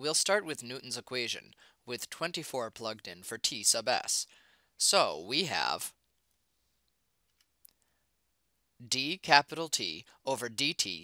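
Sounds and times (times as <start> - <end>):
narrating voice: 0.0 - 6.0, 8.8 - 11.0.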